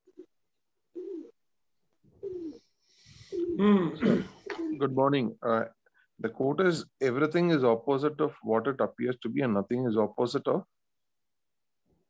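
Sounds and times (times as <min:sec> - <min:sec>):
pigeon cooing: 0:00.9 - 0:01.4, 0:02.2 - 0:05.0.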